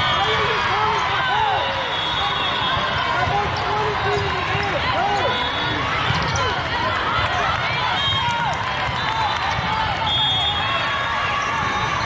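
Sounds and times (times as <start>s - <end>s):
crowd voices in a hall: 0.0s - 12.0s
shoes squeaking on court floor: 2.0s - 7.0s.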